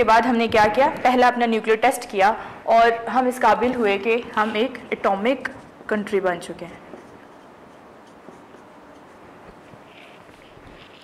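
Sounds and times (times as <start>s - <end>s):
marker writing on whiteboard: 6.8s - 11.0s.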